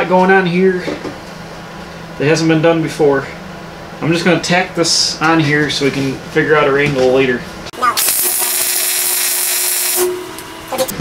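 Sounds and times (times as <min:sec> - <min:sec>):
welding arc hissing: 0:07.8 - 0:11.0.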